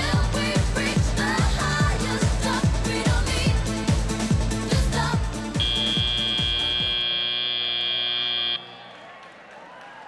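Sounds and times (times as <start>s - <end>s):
pop music with thumping beat: 0.0s - 7.0s
high electronic buzzer: 5.6s - 8.7s.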